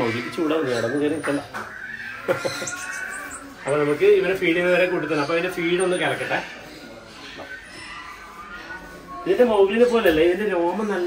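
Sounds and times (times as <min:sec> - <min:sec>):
monkey chirping high-pitched: 0:00.6 - 0:04.3.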